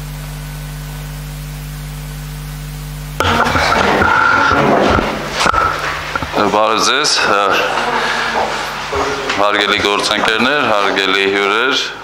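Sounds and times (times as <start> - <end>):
dense room noise with high whine: 0.0 - 12.0
electrical hum and hiss: 0.0 - 12.0.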